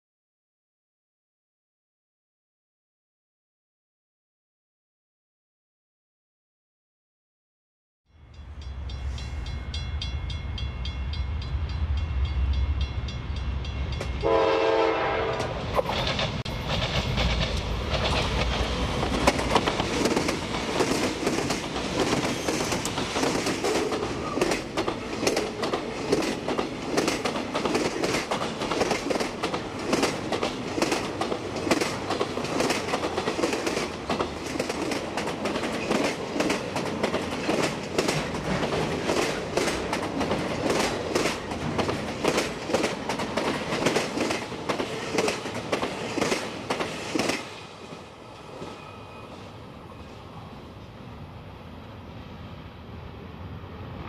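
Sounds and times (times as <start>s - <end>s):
diesel locomotives rumbling: 8.5s - 54.0s
train wheels clicking over rail joints: 15.3s - 47.6s.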